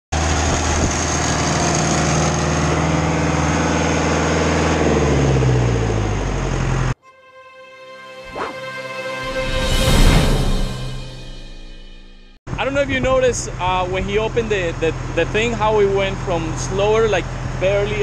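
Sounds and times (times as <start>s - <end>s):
faint intro music: 7.0s - 12.4s.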